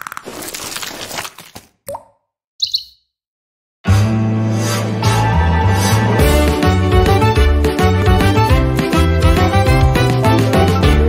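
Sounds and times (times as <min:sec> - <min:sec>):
two-note bird chirp: 0:02.6 - 0:03.0
cartoon theme music: 0:03.9 - 0:11.0.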